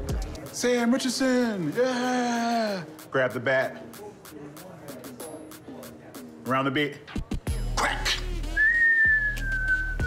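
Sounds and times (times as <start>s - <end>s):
background music with low bass: 0.0s - 10.0s
person whistling falling note: 8.6s - 10.0s.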